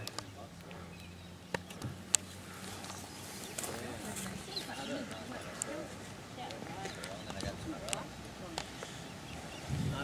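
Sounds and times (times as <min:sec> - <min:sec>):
distant people chattering: 0:00.0 - 0:10.0.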